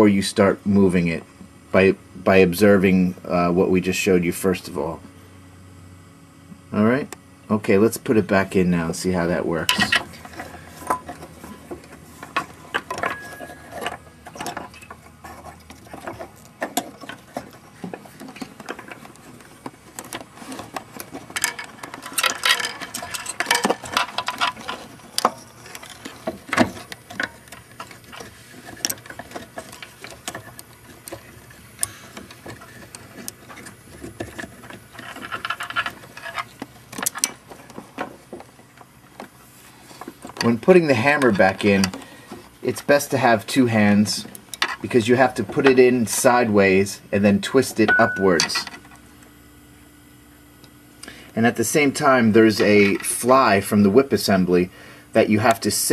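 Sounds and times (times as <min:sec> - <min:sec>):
piano action clicks and rattles: 0:09.7 - 0:39.3.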